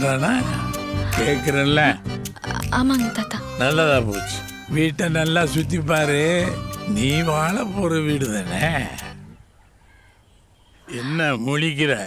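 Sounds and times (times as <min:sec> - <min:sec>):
faint bird call: 0:09.3 - 0:11.4.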